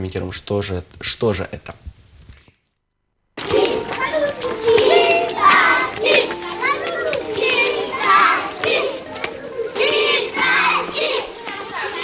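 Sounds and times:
young children calling and chattering: 0:03.4 - 0:12.0.

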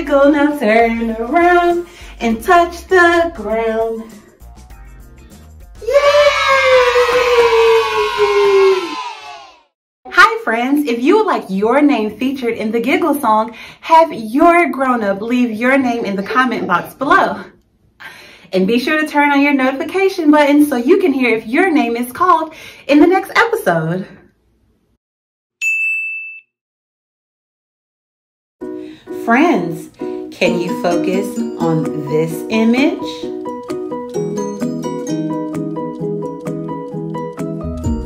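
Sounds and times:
woman squealing excitedly: 0:05.8 - 0:09.5
bell-like ding: 0:25.6 - 0:26.6.

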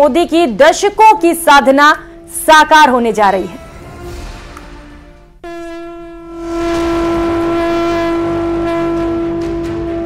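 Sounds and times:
steady horn-like tone: 0:01.8 - 0:10.0
musical swell: 0:01.9 - 0:10.0.

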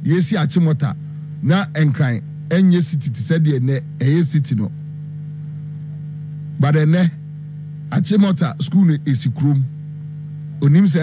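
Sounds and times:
man talking: 0:00.0 - 0:04.7, 0:06.6 - 0:07.2, 0:07.9 - 0:09.7, 0:10.6 - 0:11.0
electrical mains hum: 0:00.0 - 0:11.0.

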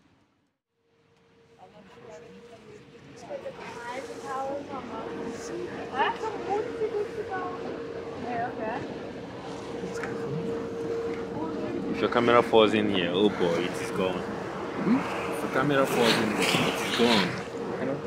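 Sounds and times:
boat motor humming: 0:01.0 - 0:18.0
water rushing: 0:03.4 - 0:18.0
indistinct voices: 0:09.6 - 0:18.0.

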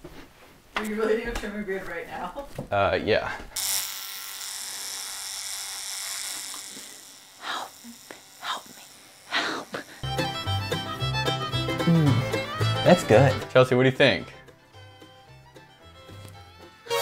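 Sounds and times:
electric trimmer buzzing: 0:03.6 - 0:12.8
music with bowed strings and beat: 0:10.0 - 0:17.0.

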